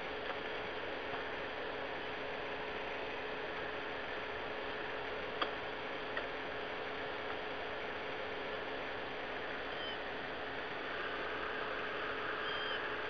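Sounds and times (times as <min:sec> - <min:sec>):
low two-tone hum: 0:00.0 - 0:13.0
phone line hiss: 0:09.7 - 0:10.1, 0:12.3 - 0:13.0.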